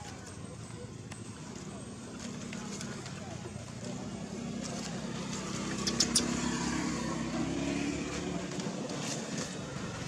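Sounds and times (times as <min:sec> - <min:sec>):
vehicle engine humming: 0:01.0 - 0:10.0
sharp clicks: 0:05.7 - 0:06.3.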